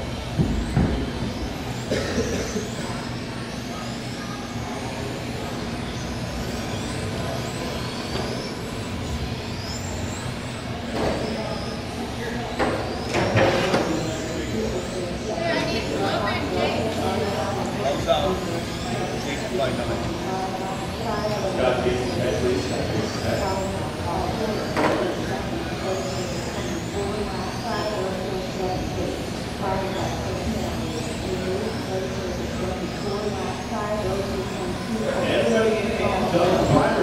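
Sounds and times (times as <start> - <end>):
crowd chatter in a hall: 0.0 - 37.0
toy car motors whining: 0.0 - 37.0.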